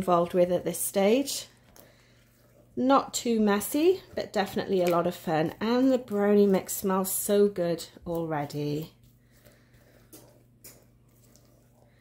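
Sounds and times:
spatula folding batter in bowl: 0:00.0 - 0:12.0.

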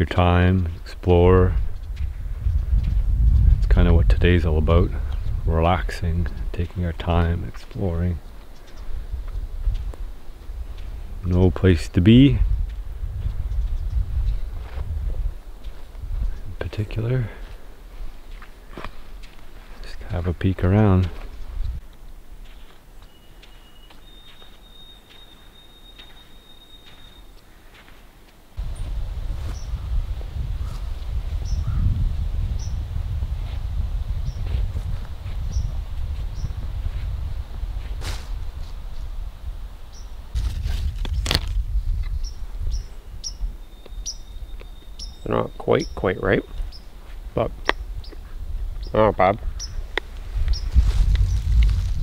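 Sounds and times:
wind rumbling on microphone: 0:00.0 - 0:22.5, 0:28.6 - 0:52.0
small bird chirps: 0:22.6 - 0:27.6, 0:29.5 - 0:29.8, 0:31.4 - 0:31.9, 0:32.6 - 0:32.8, 0:39.9 - 0:40.2, 0:42.1 - 0:46.9, 0:50.5 - 0:51.4
short high chirp repeating: 0:23.1 - 0:27.4.

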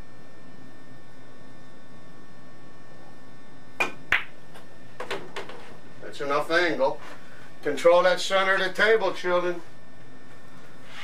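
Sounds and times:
cue ball hitting object ball: 0:03.8 - 0:04.4
cue tip striking ball: 0:03.8 - 0:04.4.

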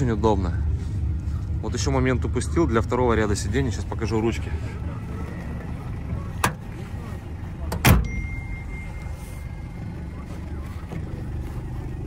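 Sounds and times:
low outdoor rumble: 0:00.0 - 0:12.0
car door thump: 0:07.7 - 0:08.2.

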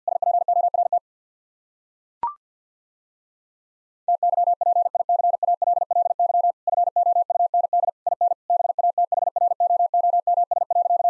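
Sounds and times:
morse code beeps: 0:04.1 - 0:11.0.

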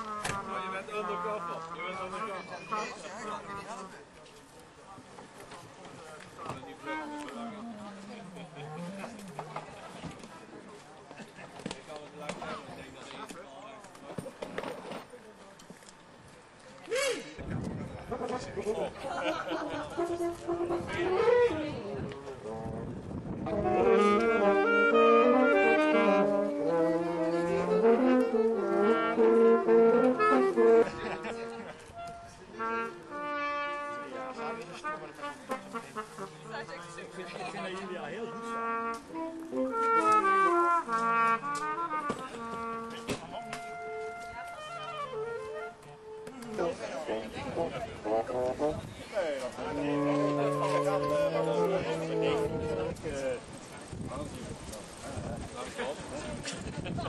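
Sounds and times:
wavering brass notes: 0:00.0 - 0:03.0, 0:06.7 - 0:09.6, 0:19.9 - 0:37.2, 0:37.9 - 0:49.0, 0:49.6 - 0:53.0
brass band playing: 0:00.0 - 0:03.1, 0:06.7 - 0:09.7, 0:19.6 - 0:49.0, 0:49.6 - 0:53.4
people talking: 0:00.0 - 0:15.8, 0:16.6 - 0:33.3, 0:33.9 - 0:40.6, 0:41.3 - 0:57.0
people chattering: 0:00.0 - 0:57.0.

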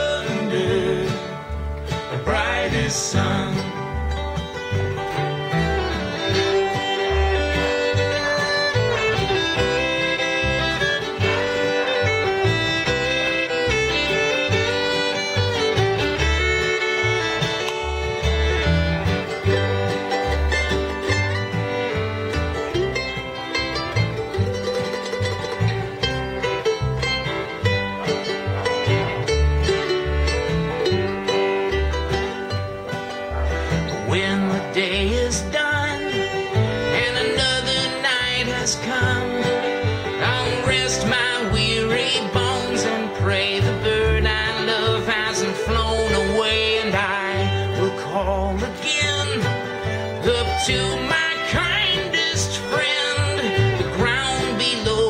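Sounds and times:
fiddle melody: 0:00.0 - 0:55.0
mandolin: 0:00.0 - 0:55.0
plucked upright bass: 0:00.0 - 0:55.0
strummed acoustic guitar: 0:00.0 - 0:55.0.

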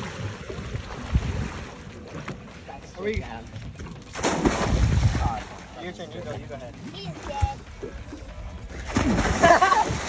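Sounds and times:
wind buffeting microphone: 0:00.0 - 0:01.8, 0:03.1 - 0:05.5.

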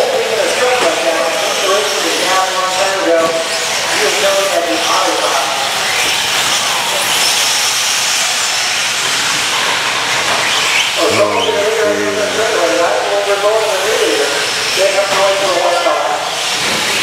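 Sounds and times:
toy trucks racing on dirt: 0:00.5 - 0:11.0.

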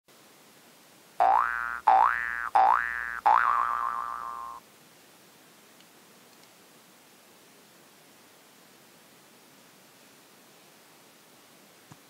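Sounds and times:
cartoon boing sound effect: 0:01.2 - 0:04.6.

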